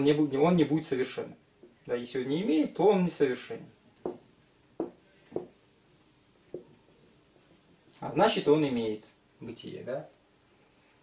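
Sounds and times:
marker writing on whiteboard: 3.3 - 8.4.

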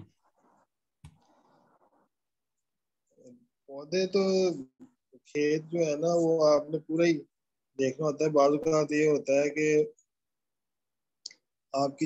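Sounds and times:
man speaking: 3.6 - 10.0, 11.8 - 12.0.

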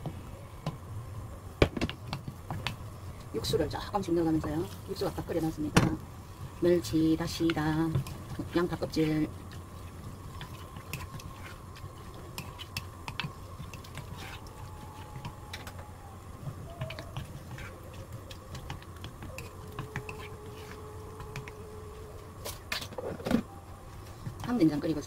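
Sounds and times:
low steady hum: 0.0 - 25.0
wooden spoon scraping clay pot: 13.6 - 14.6, 19.4 - 20.8.

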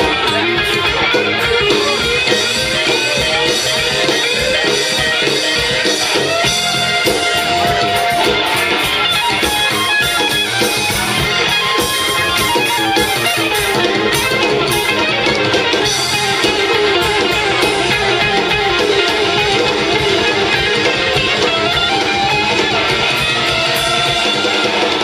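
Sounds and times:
electric guitar: 0.0 - 25.0
live rock band: 0.0 - 25.0.

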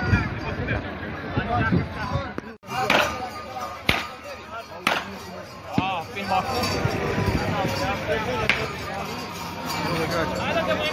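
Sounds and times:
crowd voices: 0.0 - 10.9.

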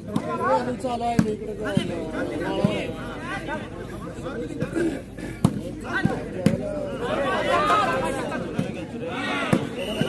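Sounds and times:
voices from court and crowd: 0.0 - 10.0.

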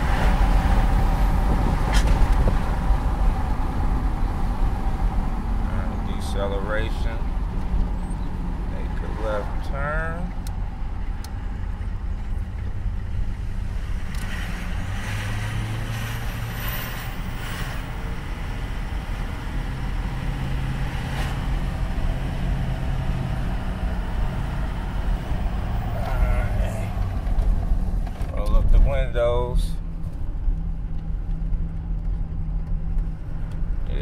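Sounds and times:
diesel engine drone: 0.0 - 34.0
road noise: 0.0 - 34.0.

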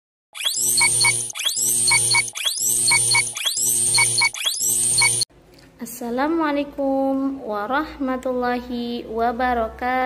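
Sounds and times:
electronic intro jingle: 0.4 - 5.2.

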